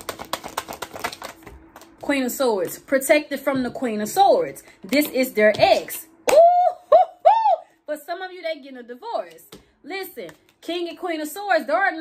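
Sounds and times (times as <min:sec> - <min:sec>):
cards being shuffled: 0:00.0 - 0:02.1.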